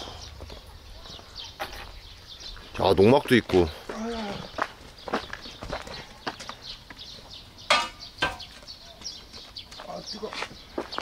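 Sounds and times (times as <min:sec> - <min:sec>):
footsteps on rough ground: 0:00.0 - 0:11.0.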